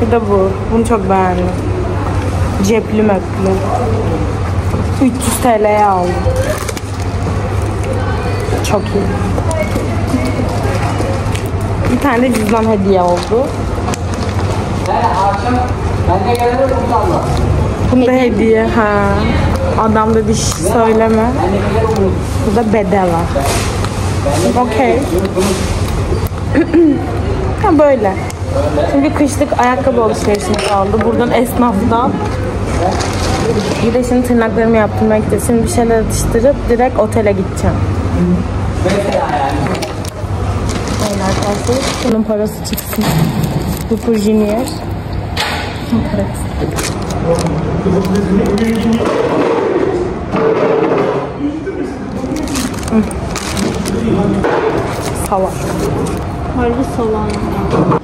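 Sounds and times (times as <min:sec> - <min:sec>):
indistinct voices talking: 0:00.0 - 0:58.0
paper wrapper crackling: 0:39.7 - 0:45.0, 0:46.4 - 0:49.1, 0:52.1 - 0:56.3.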